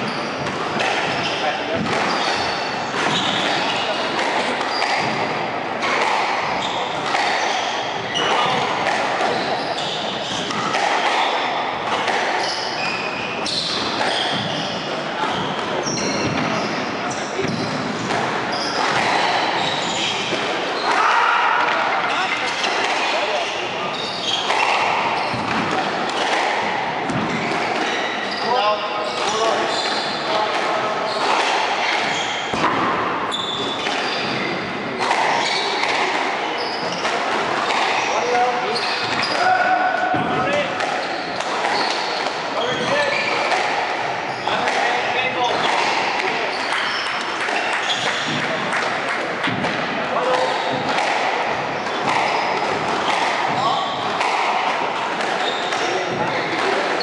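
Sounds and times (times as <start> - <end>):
murmuring voices: 0.0 - 57.0
squash ball hitting rackets and walls: 0.0 - 57.0.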